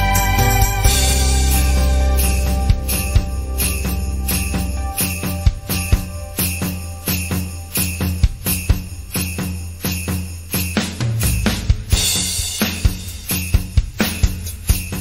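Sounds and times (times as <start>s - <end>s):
low sustained bass notes: 0.0s - 7.1s
hand percussion strikes: 0.0s - 15.0s.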